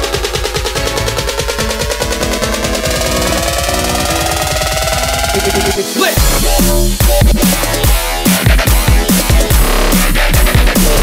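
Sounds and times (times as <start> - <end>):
synth chords: 0.0 - 11.0
rising synth tone: 0.1 - 7.1.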